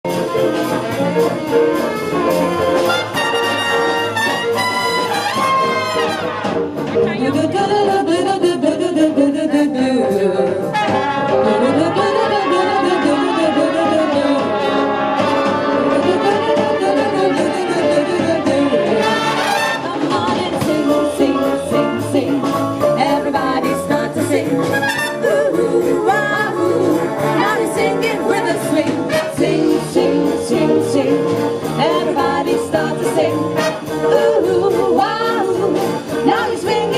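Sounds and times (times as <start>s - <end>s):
big band playing swing jazz: 0.0s - 36.9s.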